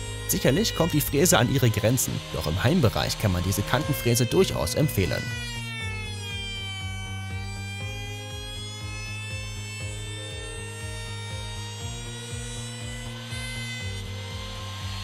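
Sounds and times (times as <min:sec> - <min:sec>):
background music with steady beat: 0:00.0 - 0:15.0
router whining while cutting wood: 0:00.0 - 0:15.0.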